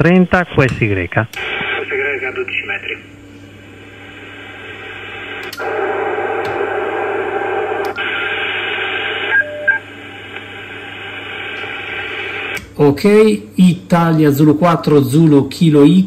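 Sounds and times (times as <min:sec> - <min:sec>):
radio receiver hiss: 0:00.0 - 0:12.7.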